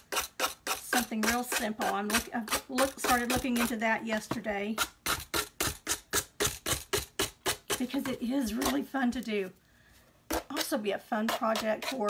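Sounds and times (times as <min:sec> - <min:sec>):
emery board scratching: 0:10.3 - 0:12.0.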